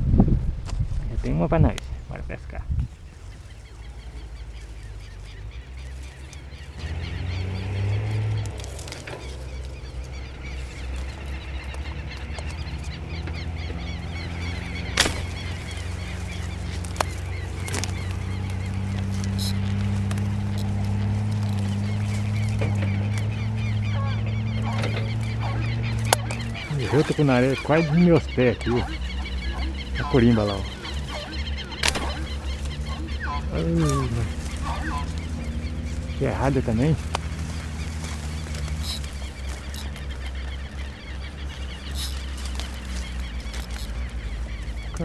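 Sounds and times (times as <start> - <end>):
steady low hum: 0.0 - 45.0
birds calling: 1.0 - 45.0.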